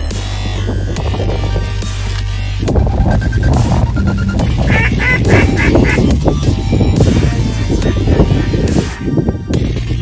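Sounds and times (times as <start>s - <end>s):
electronic music with beat: 0.0s - 10.0s
duck call quacks: 4.7s - 6.1s.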